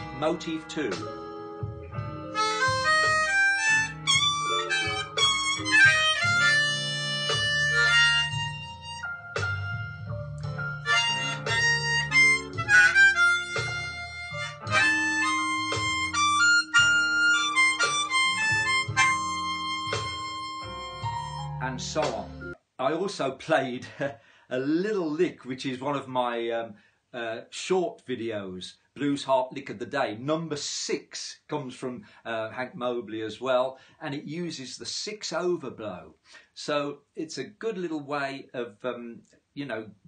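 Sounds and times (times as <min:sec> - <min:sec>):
blues backing track bass line: 0:00.0 - 0:22.6
harmonica playing blues phrases: 0:00.0 - 0:22.6.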